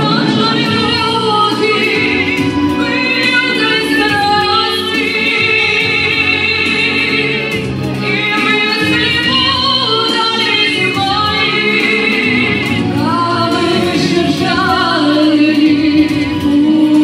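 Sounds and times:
instrumental accompaniment: 0:00.0 - 0:17.0
woman singing into microphone: 0:00.0 - 0:17.0.

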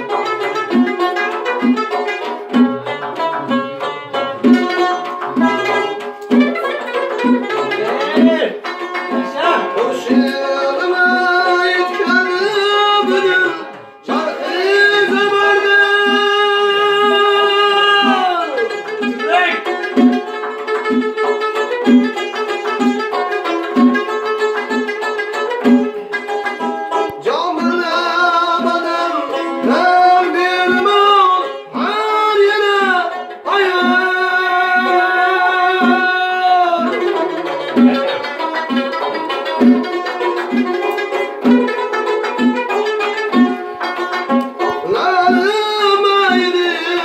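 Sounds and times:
plucked long-necked lute: 0:00.0 - 0:47.0
man singing long held notes: 0:09.8 - 0:18.7, 0:27.2 - 0:37.1, 0:44.8 - 0:47.0.

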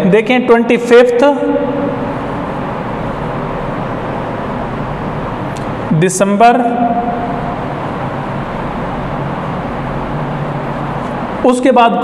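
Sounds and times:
low even hum: 0:00.0 - 0:12.0
steady background noise: 0:00.0 - 0:12.0.

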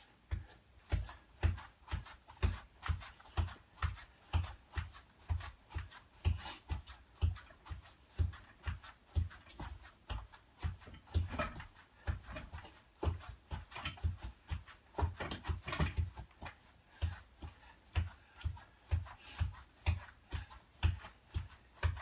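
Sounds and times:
feet thudding on exercise mat: 0:00.0 - 0:22.0
heavy breathing: 0:16.8 - 0:21.1.

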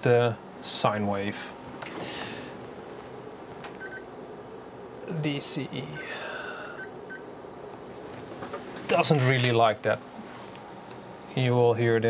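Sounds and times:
short electronic beeps: 0:03.8 - 0:04.1.

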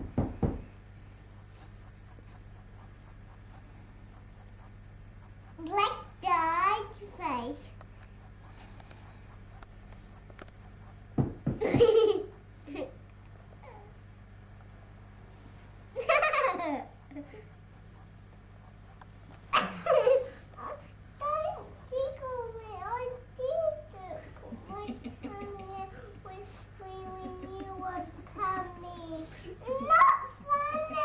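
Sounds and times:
girl laughing: 0:11.6 - 0:13.0, 0:16.0 - 0:17.5, 0:19.5 - 0:20.4, 0:24.4 - 0:26.1, 0:26.8 - 0:31.0.

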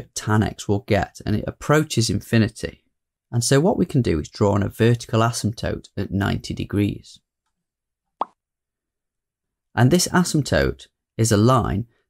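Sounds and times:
person speaking: 0:00.0 - 0:02.8.

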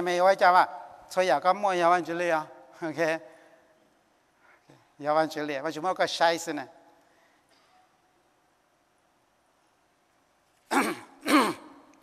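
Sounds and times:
man clearing his throat: 0:10.7 - 0:11.9.

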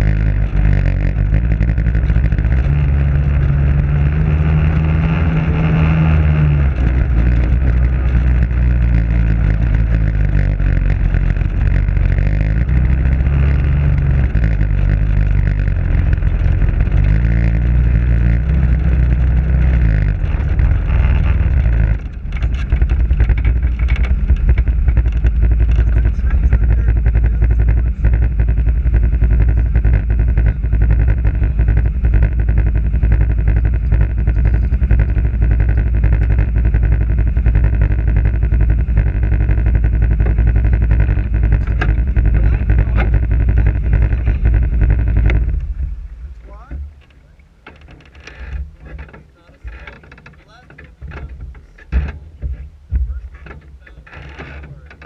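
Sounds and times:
off-road vehicle engine driving: 0:00.0 - 0:55.0
small knocks and rattles: 0:06.6 - 0:28.2, 0:29.0 - 0:55.0.

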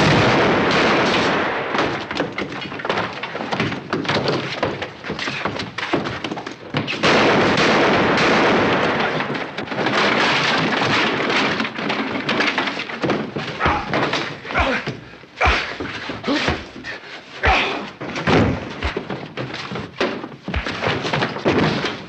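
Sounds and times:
loud crashing: 0:00.0 - 0:03.2
fight thumps and knocks: 0:00.0 - 0:22.0.

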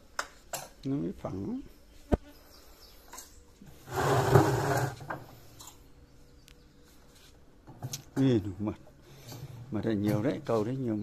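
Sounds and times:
wooden frame scraping and sliding: 0:03.8 - 0:05.2.

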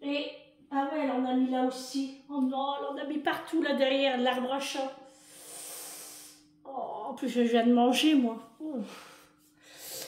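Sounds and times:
woman speaking: 0:00.0 - 0:05.0, 0:06.7 - 0:09.1.

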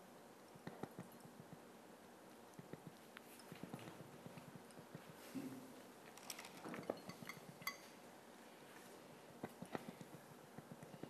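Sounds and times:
tube tapping glass dish: 0:06.8 - 0:07.9.

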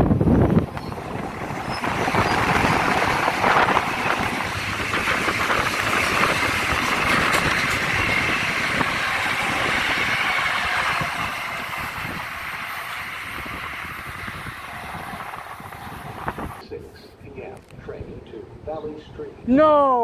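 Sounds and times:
train rumbling past: 0:00.0 - 0:16.8.

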